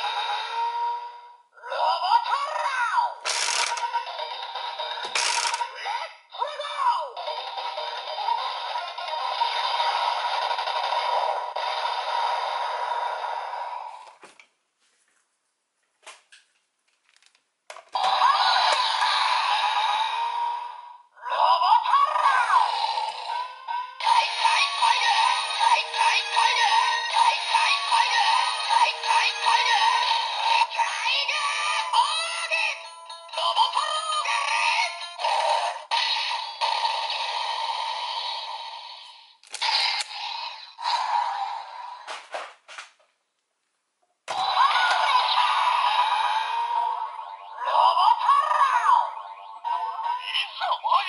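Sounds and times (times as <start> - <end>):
tinny toy speaker music: 0.0 - 13.9, 18.0 - 36.6, 44.3 - 51.0.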